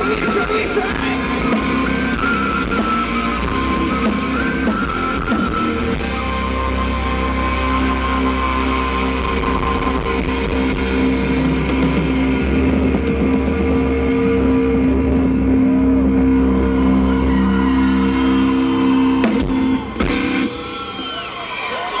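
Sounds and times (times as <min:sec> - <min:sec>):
rock band sustained chord: 0:00.0 - 0:20.8.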